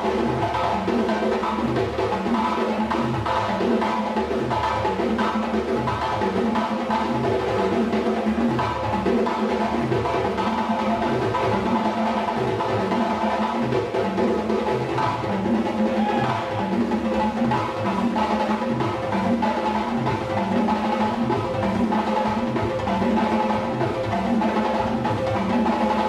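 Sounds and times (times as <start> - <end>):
hand drums playing: 0.0 - 26.0.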